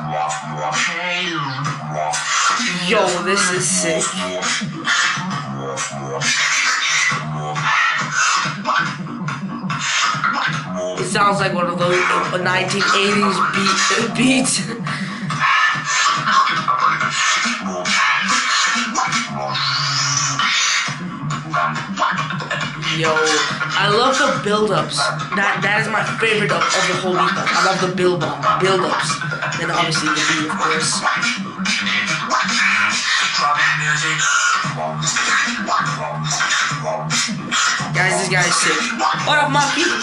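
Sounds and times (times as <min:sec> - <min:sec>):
beatbox vocal bass drone: 0:00.0 - 0:40.0.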